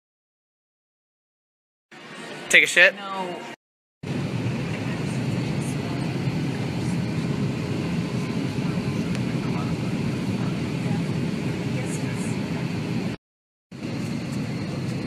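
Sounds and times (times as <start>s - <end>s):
airliner engine and airflow rumble: 2.1s - 13.2s, 13.8s - 15.0s.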